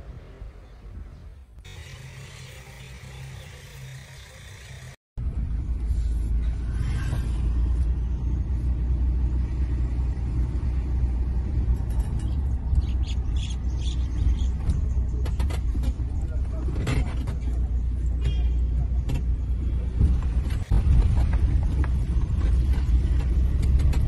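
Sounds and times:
vehicle engine rumbling: 0.0s - 24.0s.

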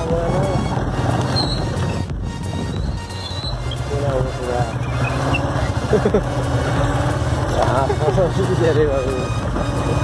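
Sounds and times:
vehicle engine rumbling: 0.0s - 10.0s
person laughing: 5.8s - 6.4s.

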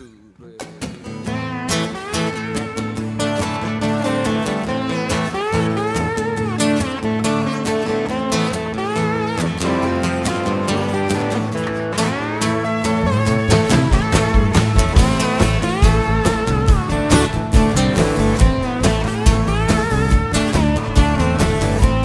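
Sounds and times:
acoustic band playing: 0.6s - 22.0s
slide guitar: 0.6s - 22.0s.

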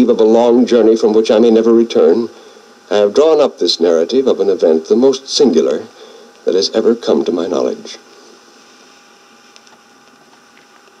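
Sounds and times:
vinyl record hiss: 0.0s - 11.0s
vinyl crackles: 8.0s - 11.0s.

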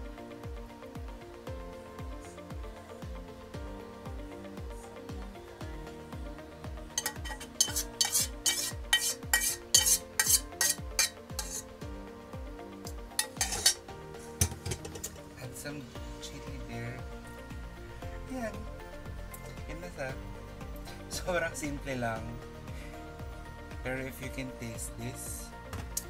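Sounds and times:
background music with steady beat: 0.0s - 26.0s
metal spoon scraping a saucepan: 7.0s - 11.7s, 13.2s - 13.8s, 14.4s - 15.2s.

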